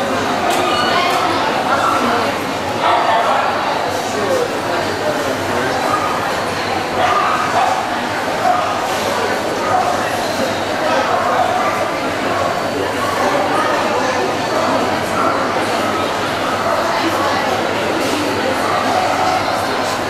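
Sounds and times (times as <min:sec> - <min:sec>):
babble of many voices: 0:00.0 - 0:20.0
dogs barking and yipping: 0:06.9 - 0:09.0.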